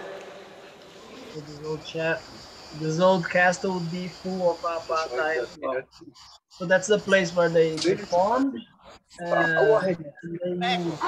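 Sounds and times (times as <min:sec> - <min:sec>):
high-pitched insect buzzing: 0:01.0 - 0:11.0
man speaking: 0:01.0 - 0:11.0.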